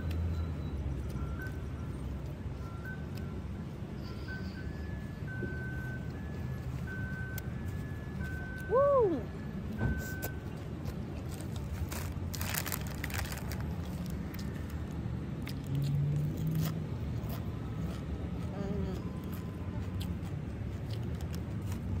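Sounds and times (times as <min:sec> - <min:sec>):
low outdoor rumble: 0:00.0 - 0:22.0
chewing with mouth clicks: 0:10.0 - 0:22.0
plastic snack packet crinkling: 0:11.2 - 0:14.9.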